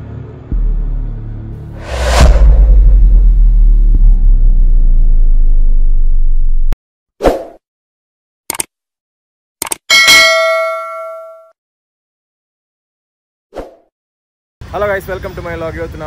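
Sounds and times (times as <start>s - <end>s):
deep sustained rumble: 0.5s - 6.8s
short whoosh: 1.7s - 6.8s
quick double clicks: 8.5s - 8.7s
bell ding: 9.9s - 11.6s.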